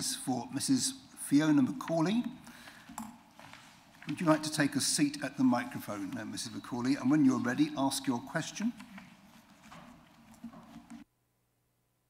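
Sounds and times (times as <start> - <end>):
light knocks and shuffles: 1.8 - 11.1.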